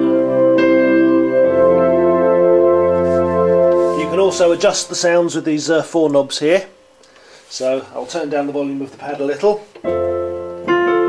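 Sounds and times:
synthesizer piano pad chord: 0.0 - 7.0, 9.8 - 11.0.

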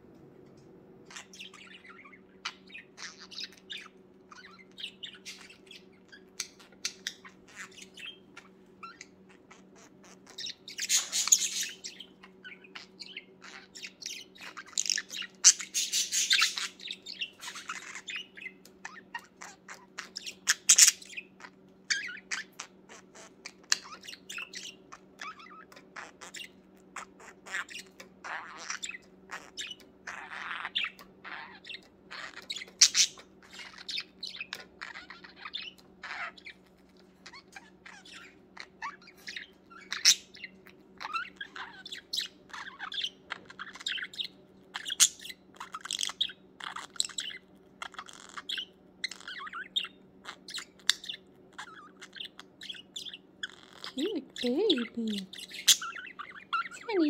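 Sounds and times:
faint low hum: 0.0 - 57.0
budgerigar warbling and chattering: 1.1 - 57.0.

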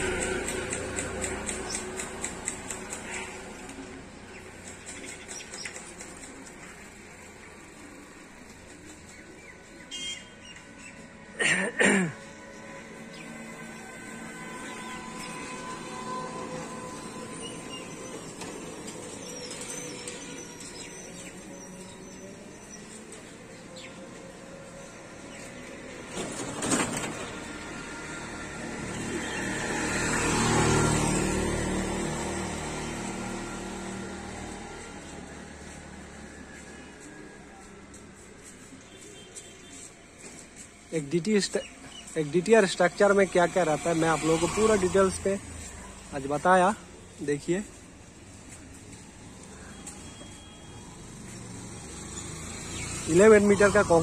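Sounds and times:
vehicle driving past: 0.0 - 5.1, 12.2 - 39.0, 41.7 - 54.0.

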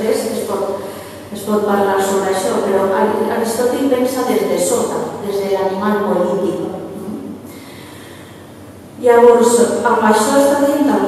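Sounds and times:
low steady room hiss: 0.0 - 11.0.

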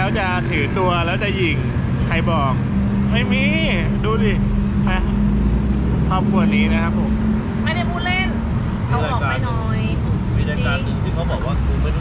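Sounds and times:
voices talking: 0.0 - 5.3, 6.0 - 12.0
low background rumble: 0.0 - 12.0.

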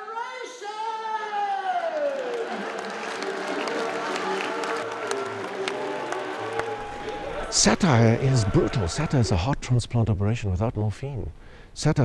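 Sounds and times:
audience clapping: 1.6 - 9.4
crowd murmuring: 2.5 - 9.6.

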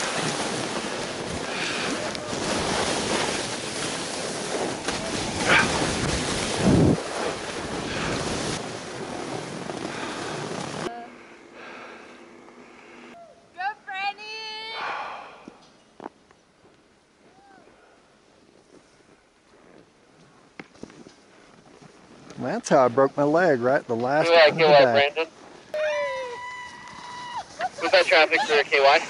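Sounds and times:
skis hissing through snow: 0.0 - 10.9
wind on microphone: 0.0 - 10.9
person speaking: 24.2 - 25.3.

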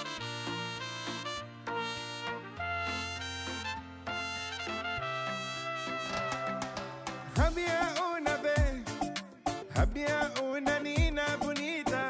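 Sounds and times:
brass melody: 0.0 - 12.0.

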